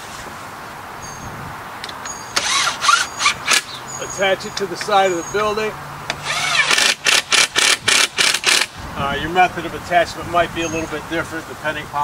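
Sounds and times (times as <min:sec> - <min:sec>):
cordless drill driving screw into wood: 0:02.4 - 0:03.8, 0:06.1 - 0:08.8.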